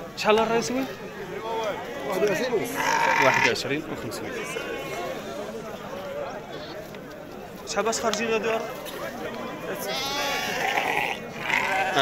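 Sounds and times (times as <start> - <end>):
sheep bleating: 2.6 - 3.6, 4.2 - 5.2, 9.7 - 12.0.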